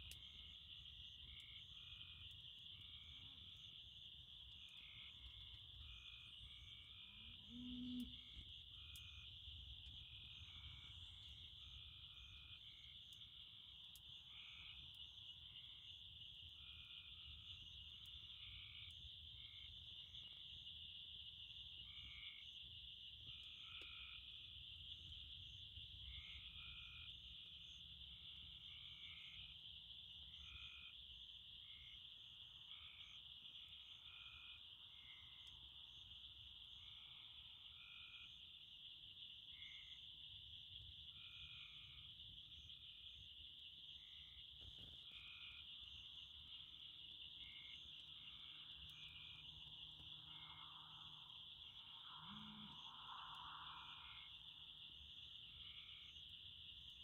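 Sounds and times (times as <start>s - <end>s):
frogs calling: 0.0s - 57.0s
insect drone: 0.0s - 57.0s.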